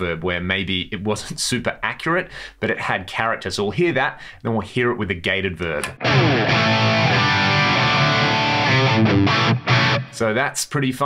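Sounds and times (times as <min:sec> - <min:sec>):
electric guitar with reverb: 0:05.9 - 0:10.2.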